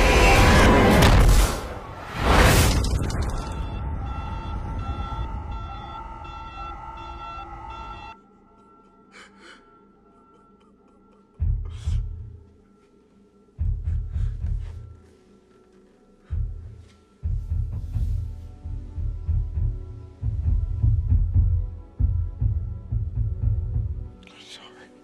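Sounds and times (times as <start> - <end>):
pulsing alarm beeps: 3.4 - 8.2.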